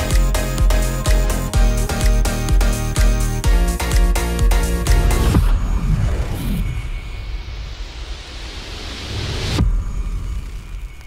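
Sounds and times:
rising noise sweep: 0:04.7 - 0:11.0
low rumble: 0:04.9 - 0:11.0.

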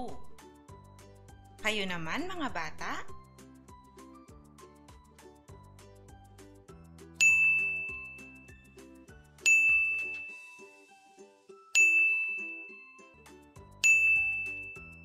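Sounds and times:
soft background music: 0:00.0 - 0:15.0
bright ding: 0:07.2 - 0:08.6, 0:09.4 - 0:10.4, 0:11.8 - 0:12.8, 0:13.8 - 0:14.9.

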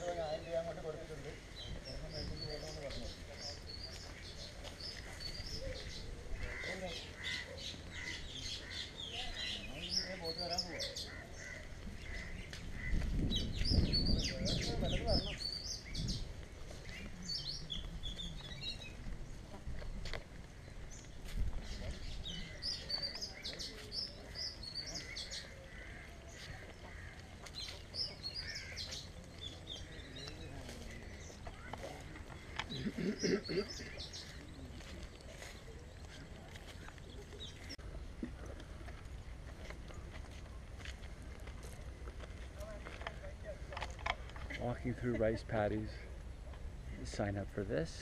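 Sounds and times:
small birds chirping: 0:00.0 - 0:47.4.

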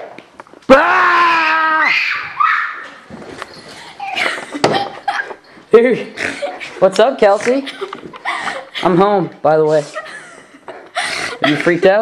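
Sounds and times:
girl screaming: 0:00.7 - 0:03.0
shuffling: 0:02.0 - 0:11.7.

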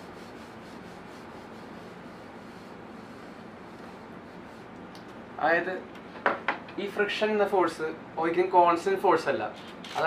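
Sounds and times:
rubbing on a whiteboard: 0:00.0 - 0:04.7.

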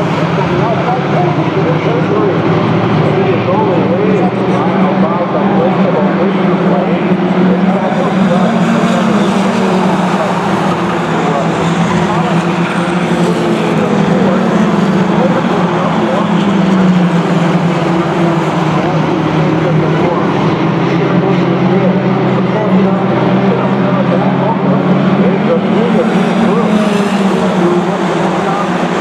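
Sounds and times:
race car engines droning: 0:00.0 - 0:29.0.

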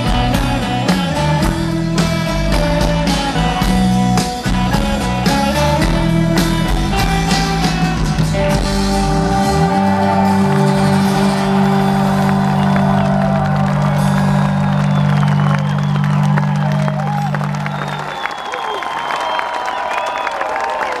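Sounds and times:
rock band chord: 0:00.0 - 0:17.8
crowd cheering and clapping: 0:00.0 - 0:21.0.

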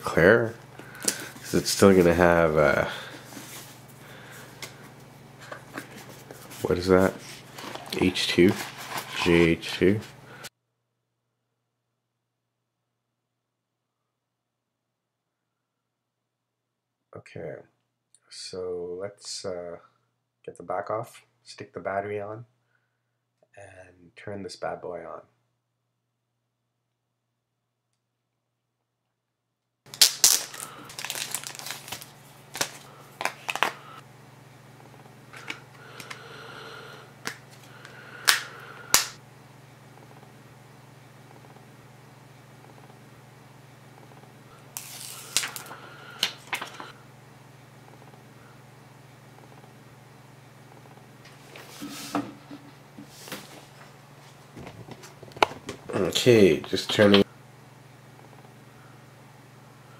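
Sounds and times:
steady low hum: 0:00.0 - 0:10.5, 0:29.9 - 0:59.9.

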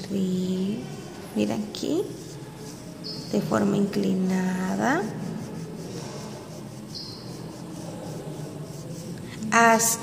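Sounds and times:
crayon scratching on paper: 0:00.0 - 0:09.9.

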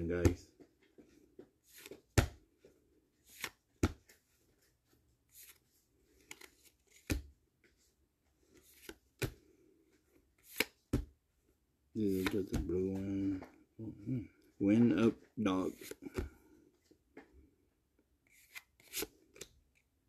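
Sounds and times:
cards snapping off a stack: 0:10.5 - 0:11.0.

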